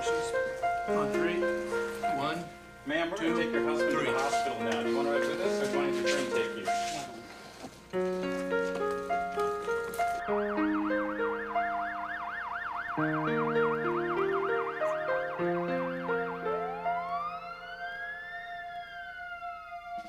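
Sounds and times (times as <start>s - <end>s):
synthesizer background music: 8.0s - 20.0s
ambulance siren: 9.3s - 20.0s.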